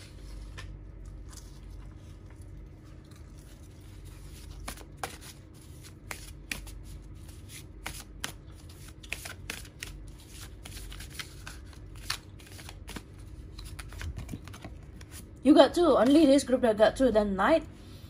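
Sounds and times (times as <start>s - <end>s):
cards being shuffled by hand: 4.1s - 15.4s.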